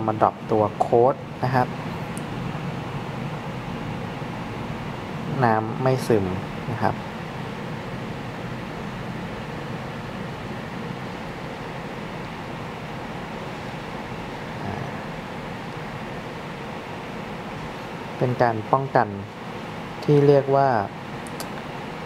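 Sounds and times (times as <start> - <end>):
steady hiss: 0.0 - 22.0.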